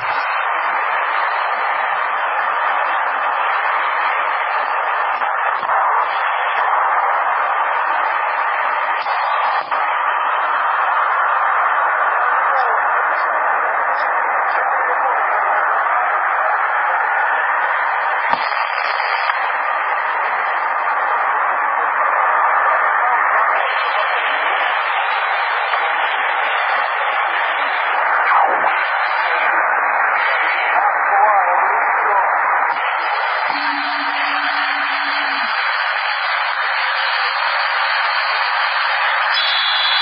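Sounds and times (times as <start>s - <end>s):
radio static hiss: 0.0s - 40.0s.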